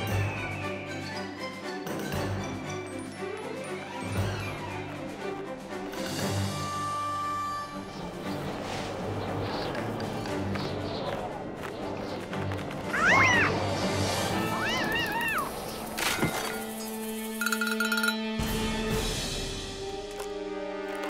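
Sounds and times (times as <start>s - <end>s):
cartoon background music: 0.0s - 21.0s
high-pitched creature cries: 14.4s - 15.5s.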